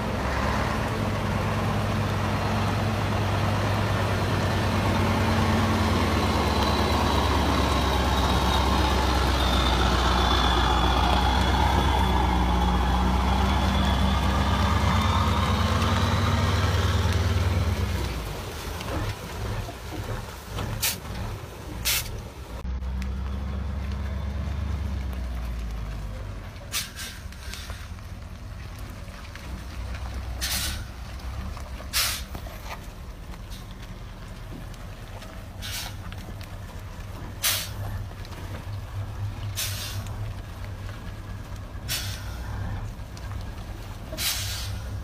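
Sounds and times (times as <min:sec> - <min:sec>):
truck engine rumble: 0:00.0 - 0:45.0
air-brake hisses: 0:21.8 - 0:22.2, 0:26.7 - 0:27.9, 0:30.4 - 0:30.9, 0:31.9 - 0:32.3, 0:37.4 - 0:37.8, 0:39.6 - 0:40.1, 0:41.9 - 0:42.4, 0:44.2 - 0:44.9.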